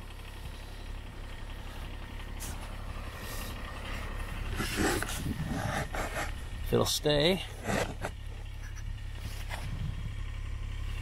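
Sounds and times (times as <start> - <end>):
distant tractor engine idling: 0.0 - 11.0.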